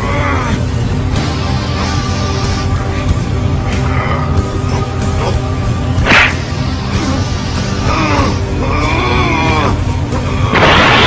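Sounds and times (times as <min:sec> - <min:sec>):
dramatic orchestral music: 0:00.0 - 0:11.0
sharp whoosh: 0:06.0 - 0:06.6.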